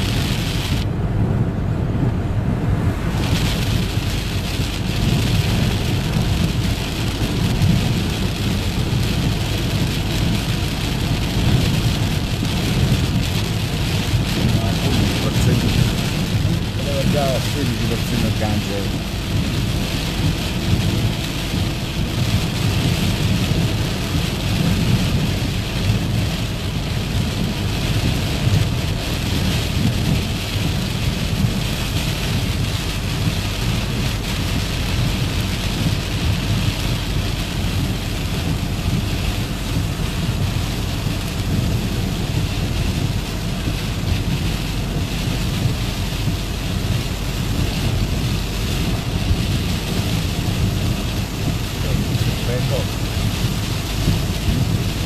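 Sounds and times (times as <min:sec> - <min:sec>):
car rumbling on wet road: 0:00.0 - 0:55.0
heavy rain on car: 0:00.0 - 0:55.0.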